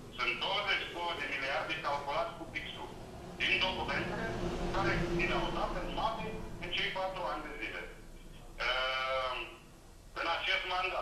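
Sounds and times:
person speaking: 0.0 - 11.0.

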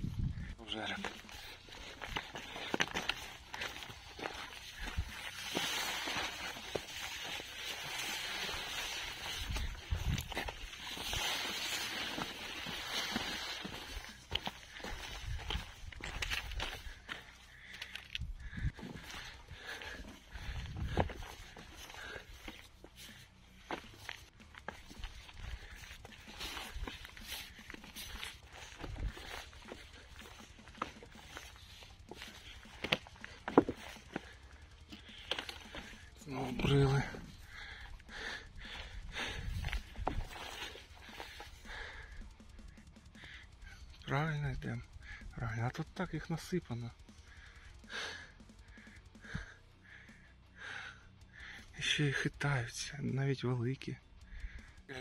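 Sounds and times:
boots on loose rock: 0.8 - 42.8
rustling: 1.0 - 37.9.

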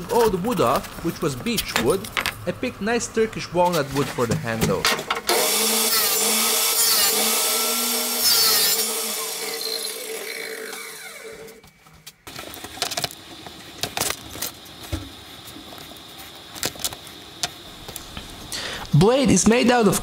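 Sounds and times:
saw blade winding down: 5.3 - 11.6
table saw cutting wood: 5.3 - 11.6.

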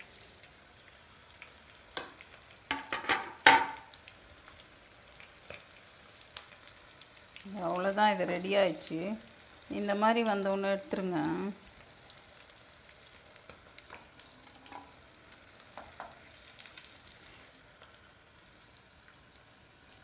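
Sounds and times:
potatoes sizzling in oil: 0.0 - 20.0.

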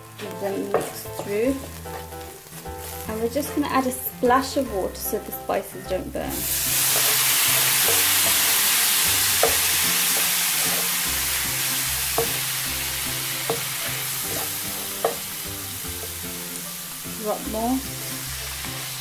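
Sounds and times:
water sizzling in hot oil: 0.0 - 5.7, 6.3 - 19.0.

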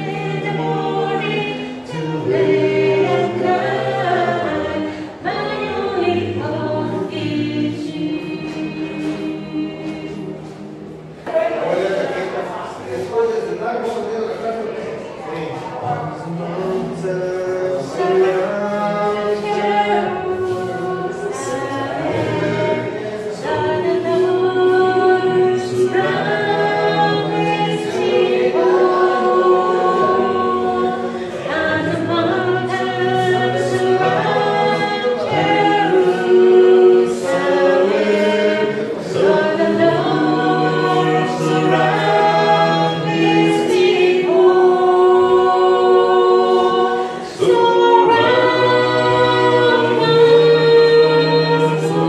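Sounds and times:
group singing a hymn a cappella: 0.0 - 14.0, 15.1 - 52.0.

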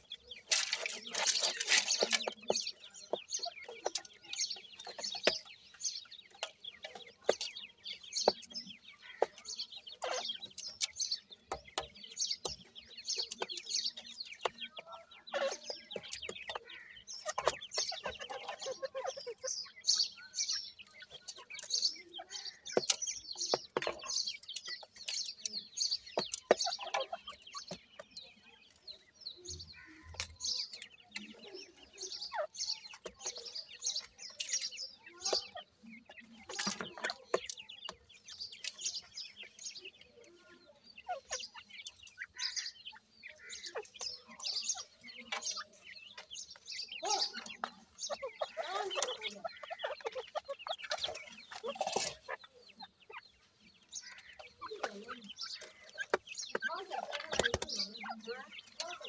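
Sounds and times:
birds chirping and clucking: 0.0 - 59.0
pecking in dry soil: 0.0 - 59.0.

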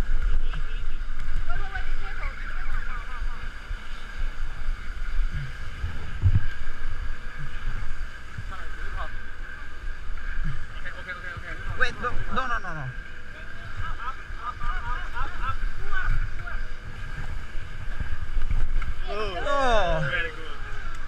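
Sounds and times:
steady hum: 0.0 - 21.0
wind on microphone: 0.0 - 21.0.

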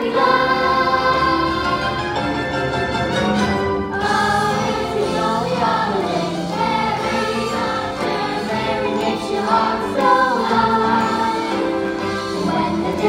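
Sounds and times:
young performers singing in chorus: 0.0 - 2.2, 3.9 - 13.0
musical accompaniment: 0.0 - 13.0.

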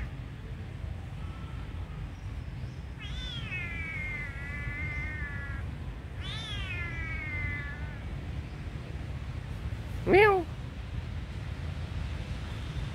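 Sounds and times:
kitten meowing: 3.0 - 5.6, 6.2 - 8.0.

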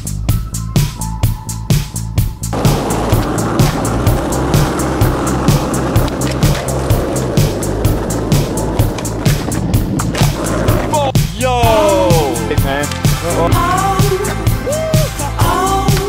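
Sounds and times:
music with steady beat: 0.0 - 16.0
skateboard wheels on asphalt: 2.5 - 11.1.

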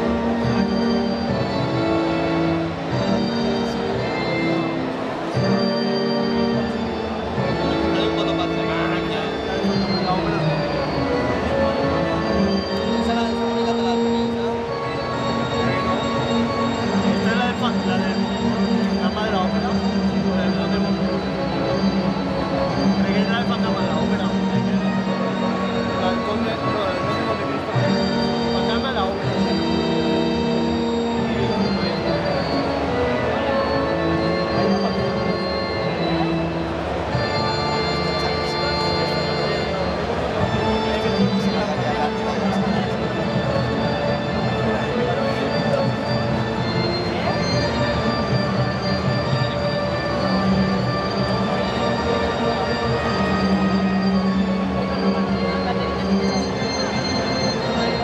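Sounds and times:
electronic keyboard playing: 0.0 - 58.0.

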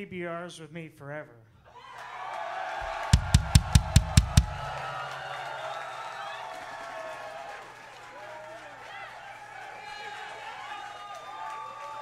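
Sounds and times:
crowd cheering: 1.7 - 12.0
drum kit hits: 2.8 - 5.9.

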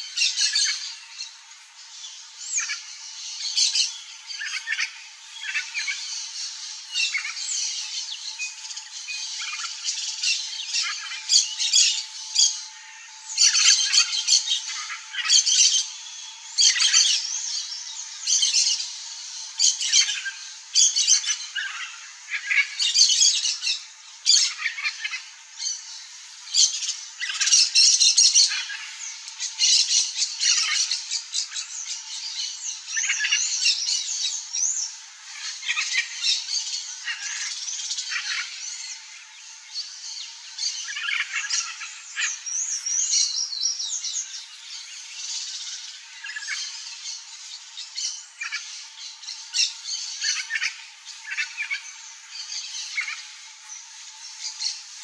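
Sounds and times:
birds squawking: 9.4 - 18.9, 48.0 - 55.0.

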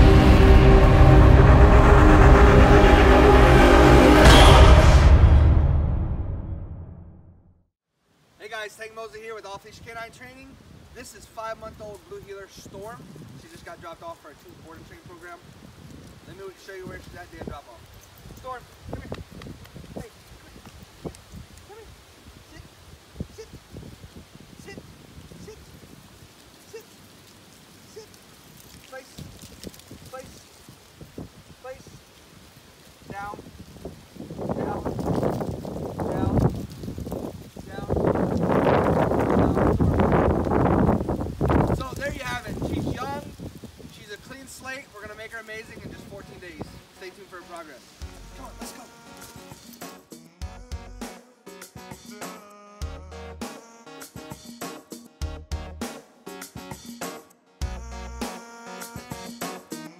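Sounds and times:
bright rising swoosh: 0.0 - 7.2
cinematic intro music: 0.0 - 7.7
feet shuffling on gravel: 34.4 - 43.9, 45.4 - 49.9.

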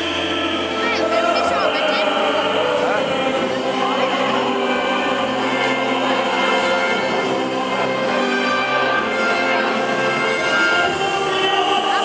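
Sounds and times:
man singing into a microphone: 0.0 - 4.4, 10.5 - 12.0
orchestral backing music: 0.0 - 12.0.

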